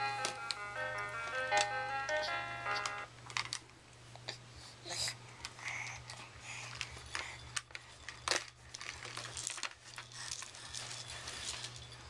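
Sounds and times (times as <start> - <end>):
plastic toys clicking and clacking: 1.2 - 3.7, 5.4 - 11.8
crinkling rustles: 6.5 - 12.0.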